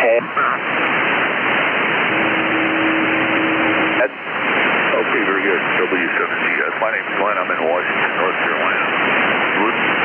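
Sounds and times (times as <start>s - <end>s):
steady low tone: 0.0s - 5.9s
radio static hiss: 0.0s - 10.0s.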